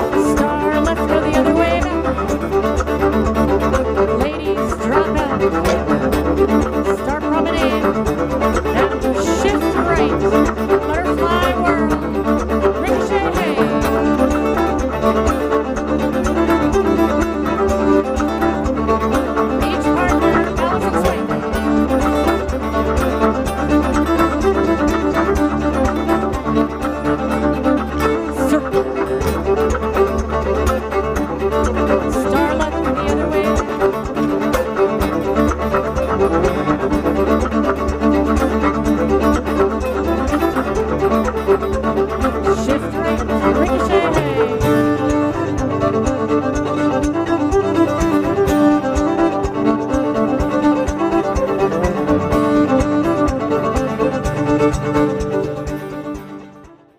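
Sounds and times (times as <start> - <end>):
fiddle-led dance tune: 0.0 - 56.9
steady bass accompaniment: 0.0 - 56.9.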